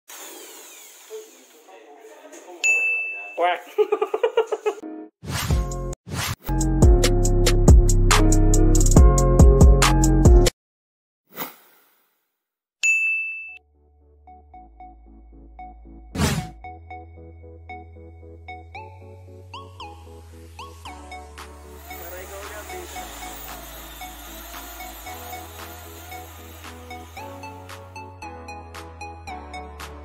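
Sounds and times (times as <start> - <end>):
electric drill spinning down: 0.1 - 1.7, 20.5 - 28.2
bright ding: 2.6 - 3.6, 12.8 - 13.6.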